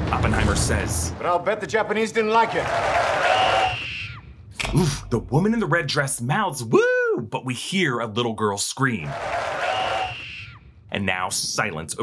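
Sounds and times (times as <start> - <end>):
crowd cheering: 2.2 - 4.2, 9.0 - 10.6.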